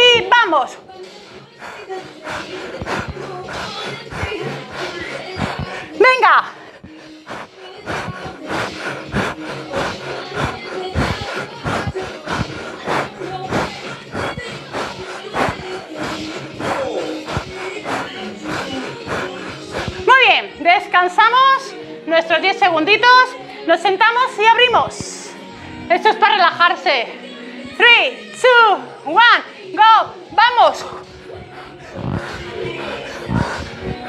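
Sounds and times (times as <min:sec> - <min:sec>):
upbeat workout music: 0:00.0 - 0:34.0.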